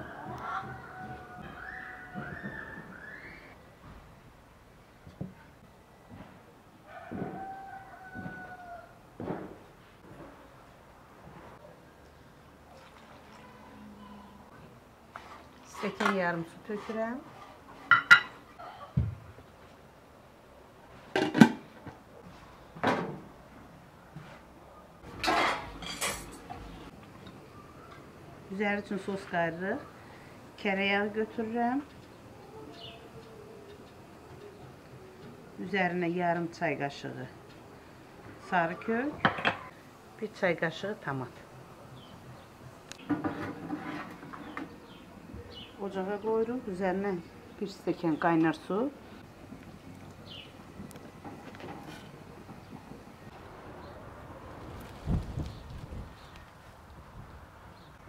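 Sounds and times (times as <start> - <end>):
metal bowls rattling: 25.1 - 26.6.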